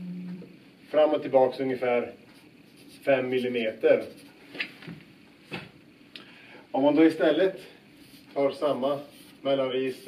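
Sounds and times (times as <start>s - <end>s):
marker pen scratching on whiteboard: 2.4s - 4.4s, 8.0s - 10.0s.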